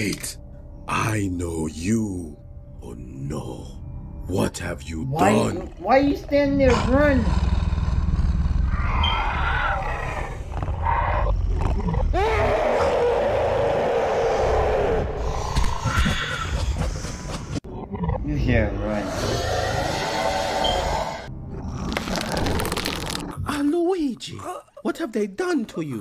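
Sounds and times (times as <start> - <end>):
cartoon monster roaring: 6.7 - 16.5, 18.9 - 21.3.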